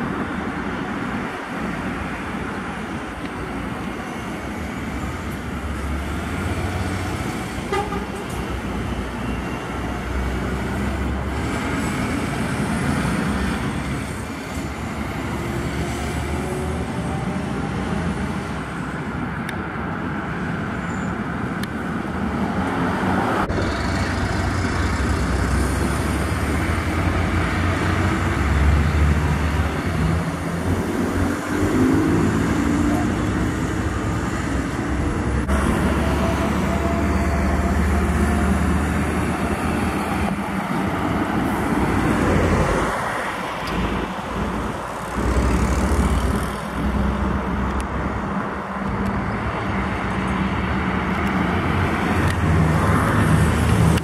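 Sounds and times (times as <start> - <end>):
trucks passing on highway: 0.0 - 54.0.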